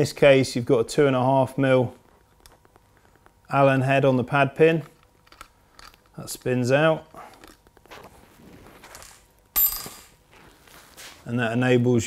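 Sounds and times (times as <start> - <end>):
faint handling noise: 1.9 - 11.3
metal part clinking on hard surface: 9.0 - 10.2.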